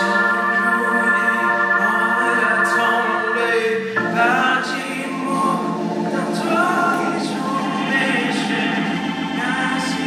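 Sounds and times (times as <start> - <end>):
live band music: 0.0 - 10.0
man singing into a microphone: 0.0 - 10.0.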